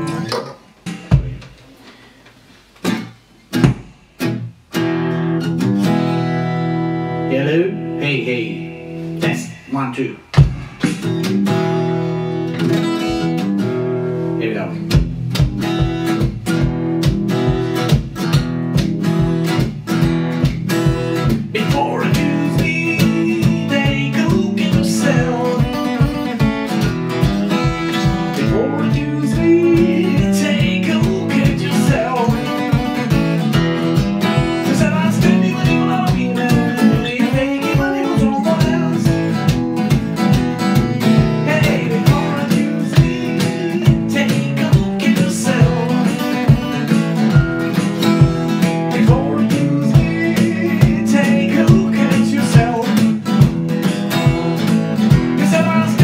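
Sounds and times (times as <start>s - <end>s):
acoustic guitar strumming: 0.0s - 2.1s, 2.8s - 56.0s
pedal drum beat: 0.9s - 1.6s, 2.8s - 4.3s, 10.3s - 13.8s, 14.9s - 56.0s
man singing: 21.5s - 26.3s, 27.5s - 33.6s, 34.2s - 47.0s, 48.0s - 53.5s, 55.0s - 56.0s.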